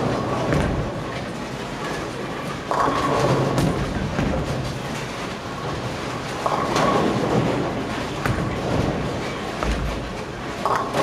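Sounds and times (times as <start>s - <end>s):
bowling pins crashing: 0.0s - 1.4s, 2.7s - 11.0s
bowling balls rumbling down lanes: 0.0s - 11.0s.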